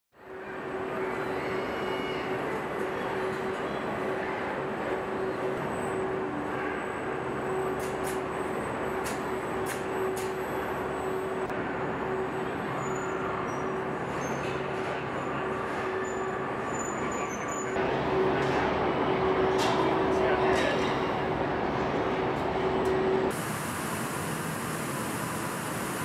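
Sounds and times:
factory machinery hum: 0:00.2 - 0:26.0
sharp hissing bursts: 0:23.3 - 0:26.0.

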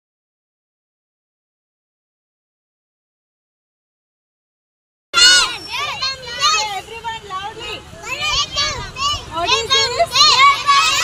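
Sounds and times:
children talking and calling out: 0:05.2 - 0:11.0.

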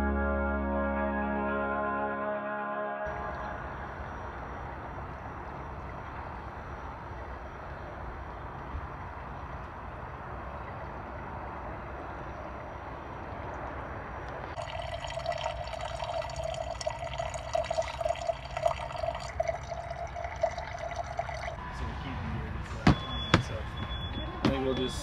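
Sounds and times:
water pouring into a container: 0:14.6 - 0:21.6.

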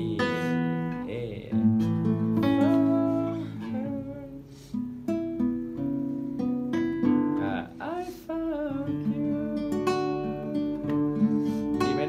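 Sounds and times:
fingerstyle nylon-string guitar: 0:00.0 - 0:12.0.

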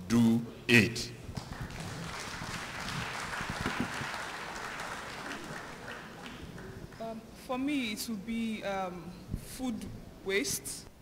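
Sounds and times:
audience applause: 0:01.4 - 0:07.0.

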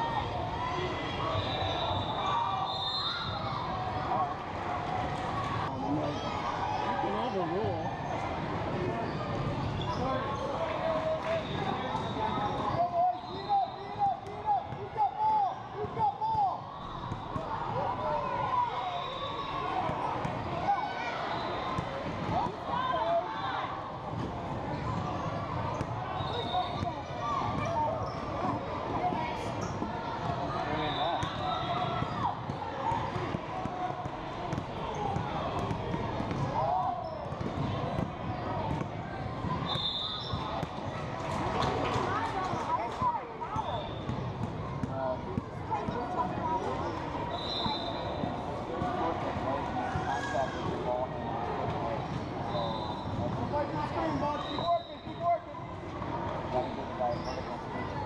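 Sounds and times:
chatter and calls of people: 0:00.0 - 0:58.0.

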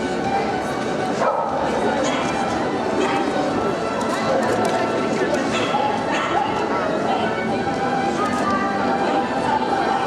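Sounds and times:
crowd murmur: 0:00.0 - 0:10.0
small dogs yapping and barking: 0:05.5 - 0:06.6.

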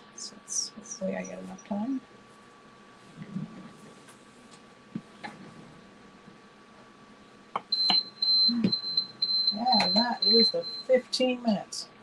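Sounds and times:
timer beeping: 0:07.7 - 0:11.0.

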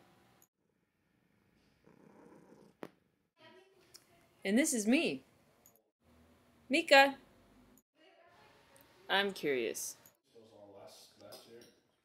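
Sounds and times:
cat purring: 0:01.7 - 0:02.9.

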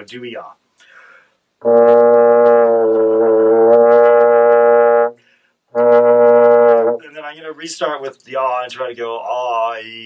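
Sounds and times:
french horn low note: 0:01.6 - 0:05.1, 0:05.8 - 0:07.0.

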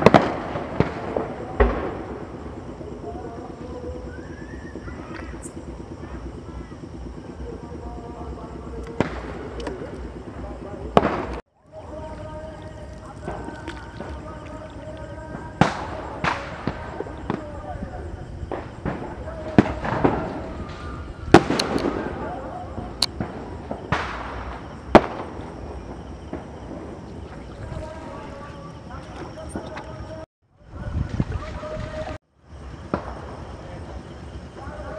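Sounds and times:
faint distant voices: 0:00.0 - 0:34.9
firecrackers banging: 0:00.0 - 0:34.9
low pulsing engine rumble: 0:00.5 - 0:32.1
sharp crack: 0:12.7 - 0:17.5, 0:18.5 - 0:26.7.

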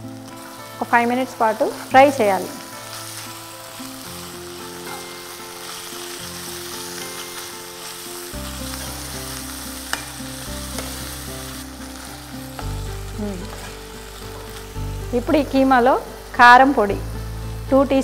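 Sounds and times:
meat sizzling in a pan: 0:00.0 - 0:18.0
soft background music: 0:00.0 - 0:18.0.

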